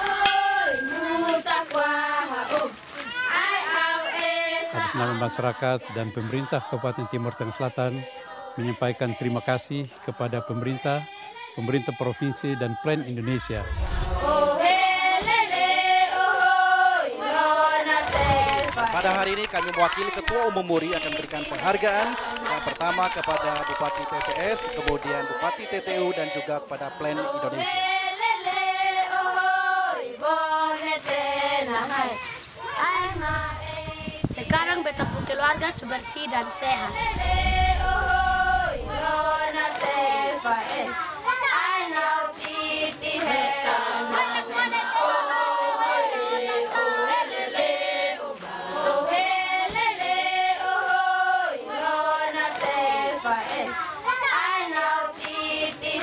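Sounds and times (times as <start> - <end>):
children singing in unison: 0.0 - 9.5, 10.2 - 19.0, 20.0 - 35.2, 35.9 - 56.0
children shouting and cheering: 2.9 - 4.5, 31.9 - 33.7, 40.5 - 42.9, 53.3 - 56.0.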